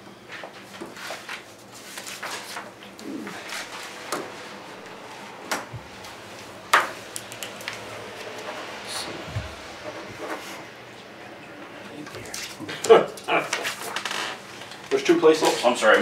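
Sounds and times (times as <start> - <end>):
pages rustling: 0.5 - 5.3.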